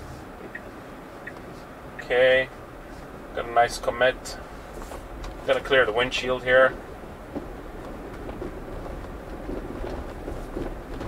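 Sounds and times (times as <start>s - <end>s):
tyre and road rumble: 0.0s - 11.0s.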